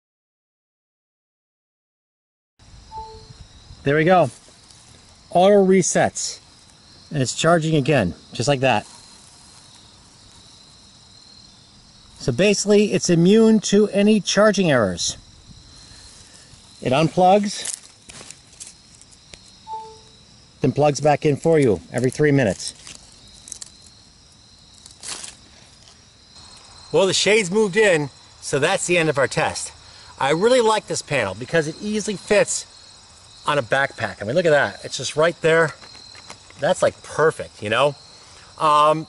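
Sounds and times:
insect trilling: 0:02.8 - 0:39.0.

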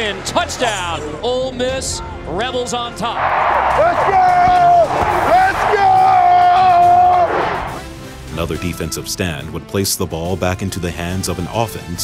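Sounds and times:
man yelling: 0:03.8 - 0:07.6.

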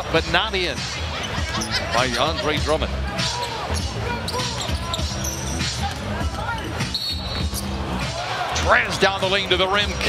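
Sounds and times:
crowd noise: 0:00.0 - 0:10.0
sneakers squeaking: 0:00.8 - 0:01.9, 0:03.2 - 0:08.6.

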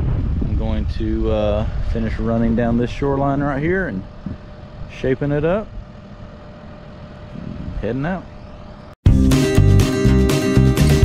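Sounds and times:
excavator diesel engine running: 0:01.6 - 0:09.0.

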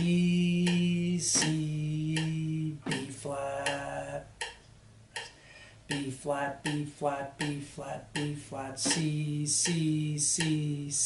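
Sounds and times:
man singing a low note: 0:00.0 - 0:04.4, 0:05.9 - 0:11.0
sharp metronome clicks: 0:00.0 - 0:11.0.

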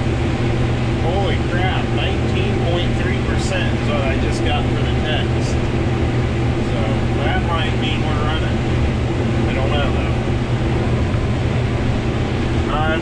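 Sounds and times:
combine harvester engine drone: 0:00.0 - 0:13.0.

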